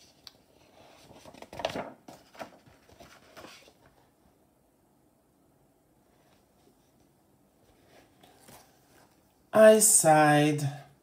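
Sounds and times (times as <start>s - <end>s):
book pages turning: 0.0s - 4.0s, 7.6s - 9.2s.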